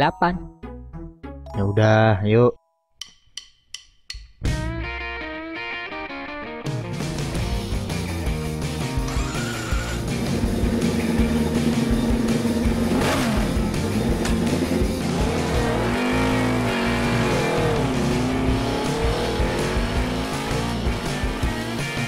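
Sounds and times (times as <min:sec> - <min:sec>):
background music: 0:00.0 - 0:22.0
motorcycle engines revving: 0:09.0 - 0:22.0.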